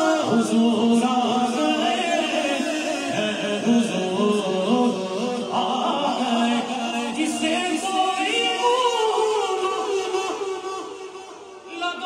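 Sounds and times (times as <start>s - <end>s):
man singing unaccompanied: 0.0s - 12.0s.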